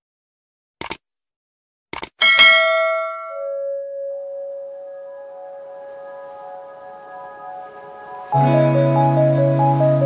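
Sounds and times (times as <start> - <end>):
notification bell ding: 2.2 - 3.7
low ringing tone: 2.2 - 5.0.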